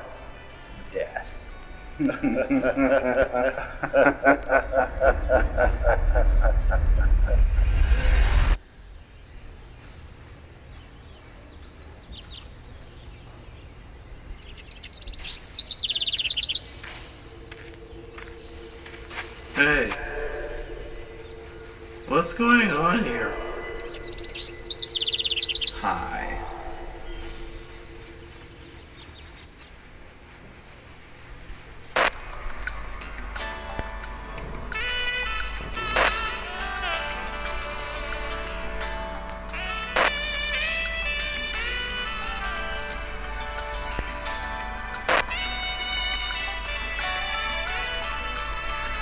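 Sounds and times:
birds chirping: 0.0 - 29.8, 32.0 - 49.0
low hum: 1.6 - 11.3, 12.6 - 30.2
low steady rumble: 3.9 - 8.6
rapid high-pitched bird trill: 13.9 - 29.5.

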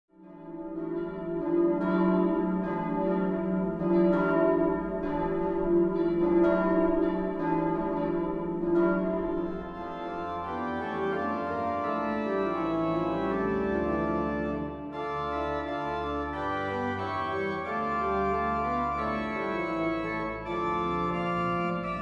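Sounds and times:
church bells ringing: 0.4 - 22.0.

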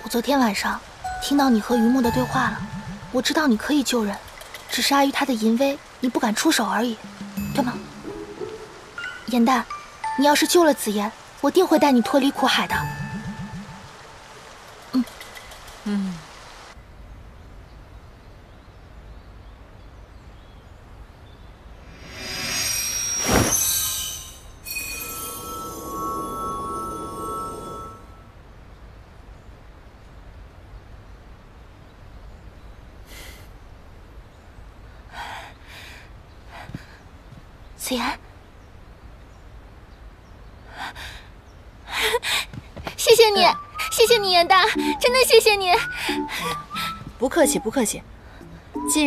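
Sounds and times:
person speaking: 0.0 - 4.2, 6.0 - 8.2, 9.2 - 13.8, 43.1 - 49.0
background hiss: 0.0 - 49.0
low steady rumble: 2.0 - 3.9
high hiss: 21.8 - 28.2
faint bird chirps: 43.0 - 49.0.

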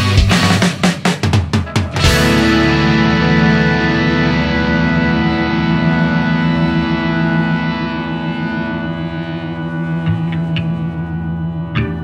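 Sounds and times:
sustained rock guitar chord: 1.6 - 12.0.

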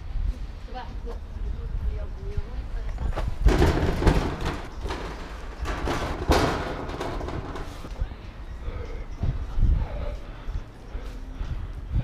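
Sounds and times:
dull thumps: 3.2 - 7.9.

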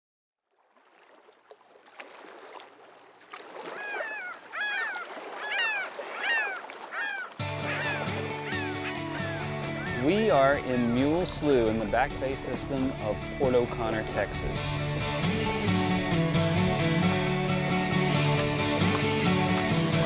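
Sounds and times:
bird calling: 3.6 - 10.6
music track: 7.4 - 20.0.

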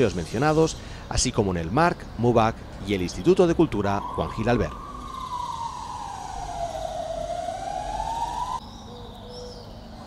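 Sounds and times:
emergency vehicle siren wailing: 3.7 - 9.1.

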